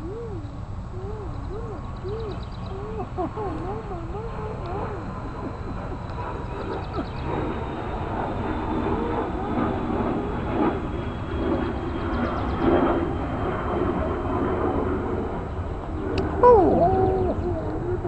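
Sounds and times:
puppies whimpering: 0.0 - 8.1, 8.8 - 10.2, 16.2 - 18.0
puppy yelp: 16.4 - 18.0.

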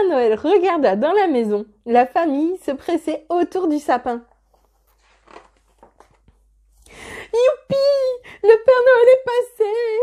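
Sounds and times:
book page turning: 4.3 - 6.9.

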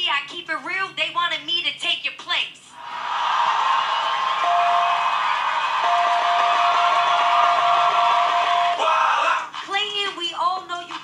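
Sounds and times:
audience cheering and clapping: 2.8 - 9.5
long held shout: 4.3 - 9.4.

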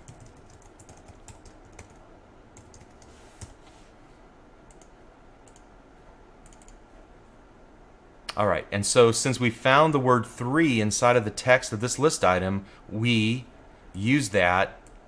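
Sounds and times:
faint keyboard typing: 0.0 - 3.7, 4.7 - 5.7, 6.4 - 6.8.

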